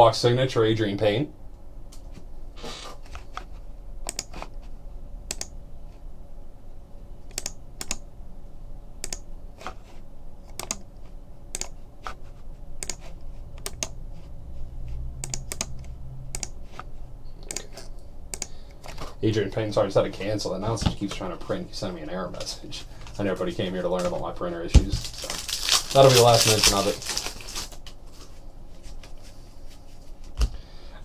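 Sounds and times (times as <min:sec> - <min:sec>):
low steady hum: 0:00.0 - 0:31.0
computer keyboard typing: 0:04.0 - 0:04.4, 0:05.3 - 0:05.5, 0:07.3 - 0:08.0, 0:09.0 - 0:09.2, 0:10.5 - 0:10.9, 0:11.5 - 0:11.8, 0:12.8 - 0:14.0, 0:15.2 - 0:16.6, 0:17.4 - 0:18.5.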